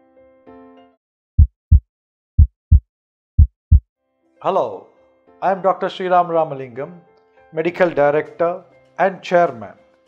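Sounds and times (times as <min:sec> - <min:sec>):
heartbeat double thump: 0:01.4 - 0:01.8, 0:02.4 - 0:02.8, 0:03.4 - 0:03.8.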